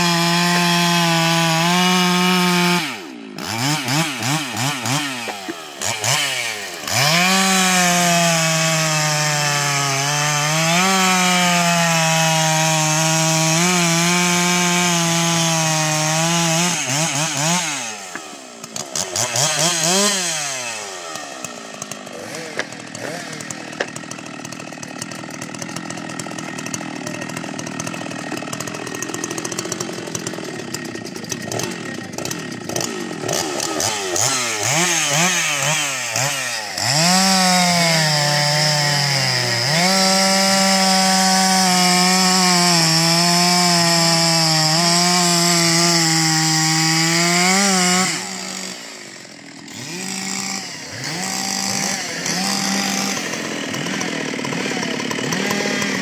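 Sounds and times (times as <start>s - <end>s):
chainsaw revving and idling: 0.0s - 56.0s.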